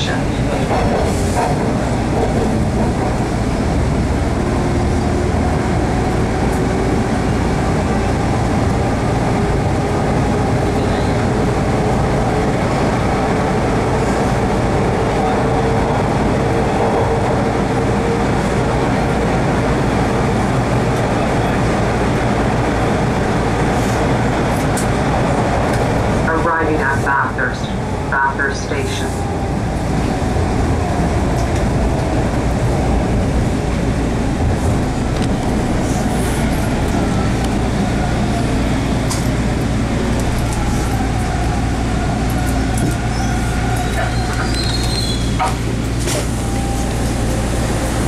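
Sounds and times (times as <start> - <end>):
train wheels rumbling on track: 0.0 - 48.0.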